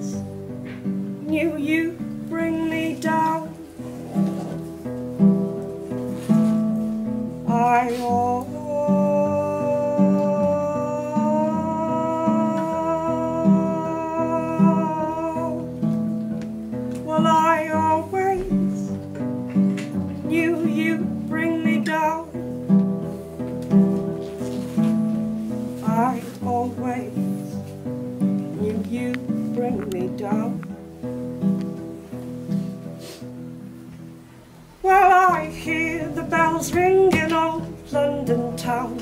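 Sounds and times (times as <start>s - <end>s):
woman singing: 0.0s - 0.4s, 1.2s - 3.6s, 7.4s - 15.9s, 17.0s - 19.0s, 20.2s - 22.4s, 25.8s - 27.6s, 28.5s - 30.8s, 34.8s - 39.0s
acoustic guitar playing: 0.0s - 39.0s.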